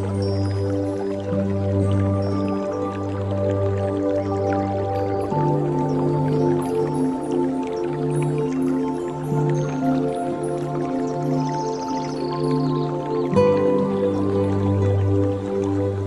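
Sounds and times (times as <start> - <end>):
ambient synth pad chords: 0.0 - 16.0
faint water drips: 0.0 - 16.0.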